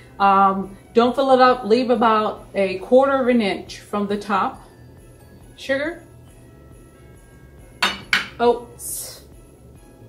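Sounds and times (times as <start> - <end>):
faint background music: 0.0 - 10.0
glass dish clinking: 7.8 - 8.4.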